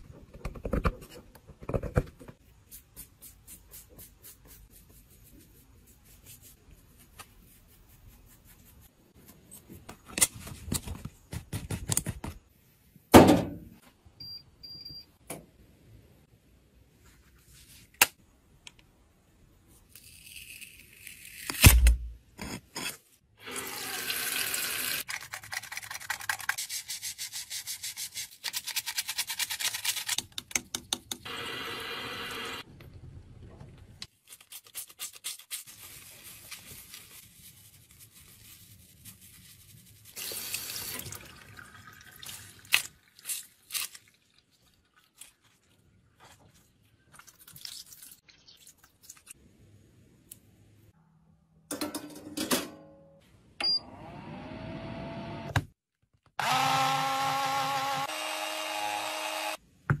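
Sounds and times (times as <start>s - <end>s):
tap water running: 40.2s - 42.7s.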